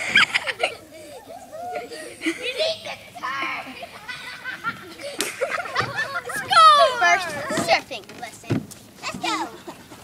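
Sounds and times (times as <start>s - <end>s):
children's voices outdoors: 0.0s - 10.0s.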